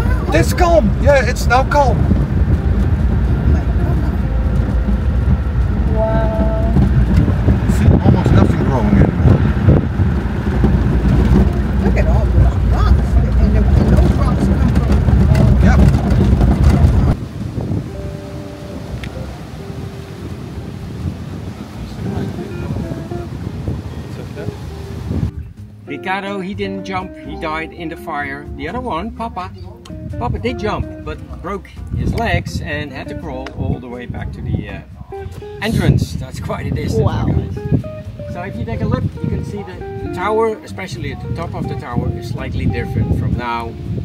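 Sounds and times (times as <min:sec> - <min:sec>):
vehicle engine and tyres rumbling: 0:00.0 - 0:25.9, 0:28.5 - 0:44.0
rattles and knocks: 0:09.1 - 0:17.2.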